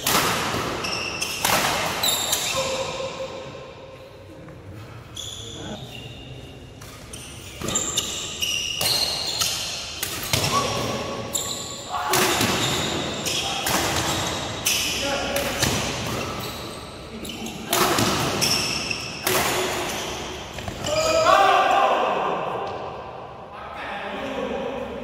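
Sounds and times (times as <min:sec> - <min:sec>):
racket hitting shuttlecock: 0:00.0 - 0:02.6, 0:12.1 - 0:16.4, 0:17.7 - 0:20.8
shoe squeaks on court floor: 0:00.8 - 0:02.8, 0:05.1 - 0:11.9, 0:16.0 - 0:17.7, 0:18.3 - 0:19.2
loud shout: 0:20.8 - 0:22.6.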